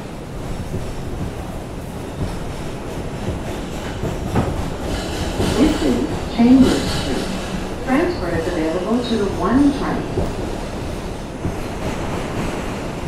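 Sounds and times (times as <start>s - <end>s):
subway wheels rumbling on rail: 0.0s - 13.0s.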